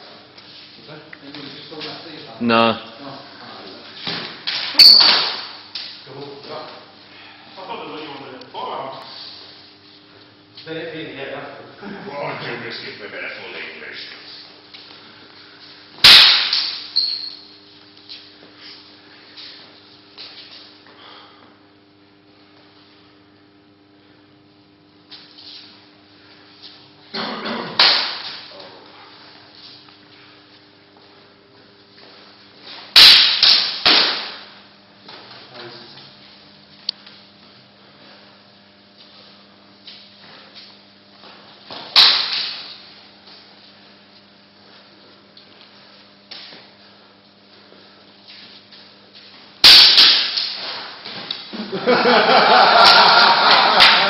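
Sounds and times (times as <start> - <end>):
sword blades clashing: 4.7 - 5.6, 16.0 - 17.5, 33.0 - 34.4, 42.0 - 42.7, 49.6 - 50.9.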